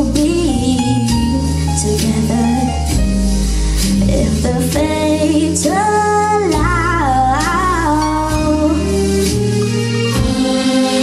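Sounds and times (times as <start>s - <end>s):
girl singing into a microphone: 0.0s - 2.9s, 4.0s - 8.9s
instrumental accompaniment: 0.0s - 11.0s.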